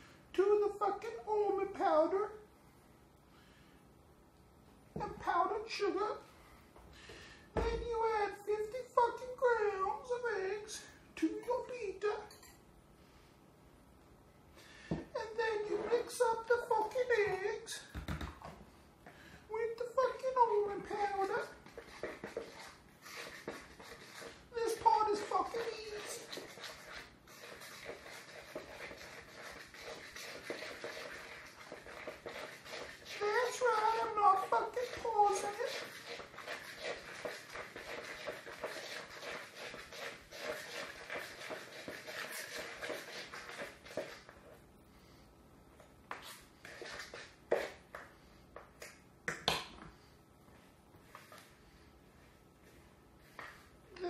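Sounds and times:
spoon mixing paste in plastic bowl: 0:19.8 - 0:44.6, 0:45.8 - 0:48.8.

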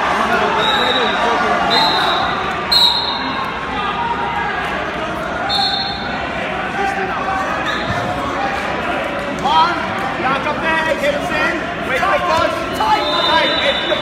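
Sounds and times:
echoing crowd chatter: 0:00.0 - 0:14.0.

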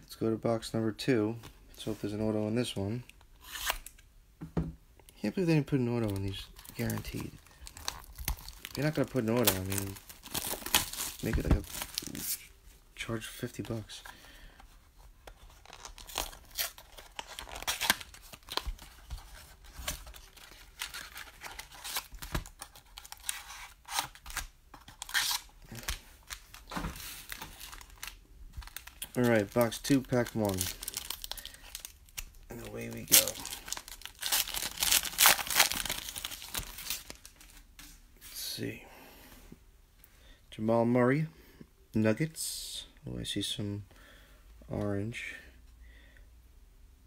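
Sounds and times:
packs tearing and rustling: 0:06.0 - 0:12.5, 0:15.4 - 0:37.6.

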